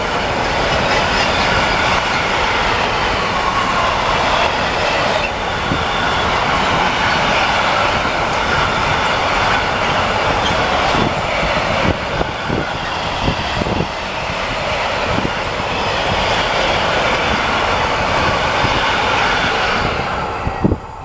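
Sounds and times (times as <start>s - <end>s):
freight train rumbling past: 0.0s - 21.0s.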